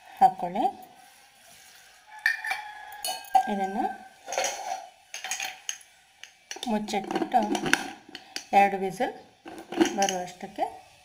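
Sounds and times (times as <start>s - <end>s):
metal utensil clinking on pot: 2.2s - 8.6s, 9.5s - 10.4s.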